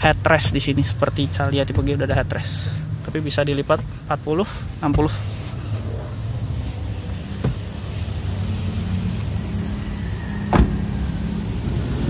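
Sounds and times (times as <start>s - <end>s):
car engine idling: 0.0s - 12.0s
car door thump: 7.3s - 7.8s, 10.5s - 10.9s.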